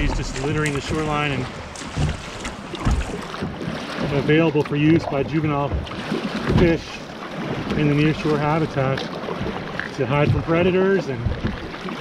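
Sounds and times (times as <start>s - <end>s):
wind buffeting microphone: 0.0s - 4.2s
water splashing against kayak hull: 0.0s - 12.0s.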